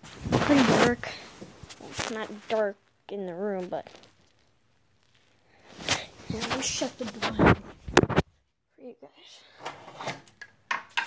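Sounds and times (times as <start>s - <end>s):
shuffling and handling noise: 0.0s - 8.4s.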